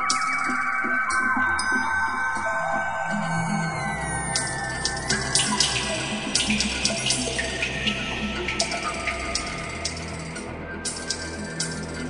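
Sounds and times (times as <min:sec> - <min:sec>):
ambient music drone: 0:00.0 - 0:12.0.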